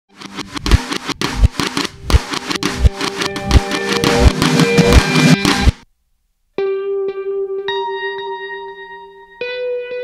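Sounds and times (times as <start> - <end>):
symphonic rock music: 1.7 - 5.8.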